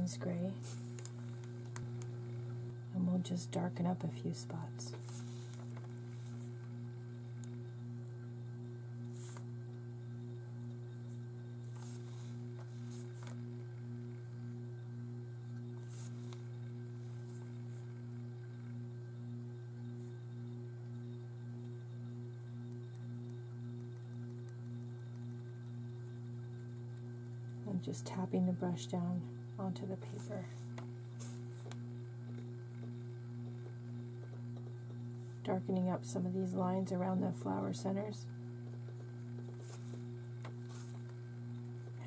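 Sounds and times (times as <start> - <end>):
low electrical hum: 0.0 - 42.0.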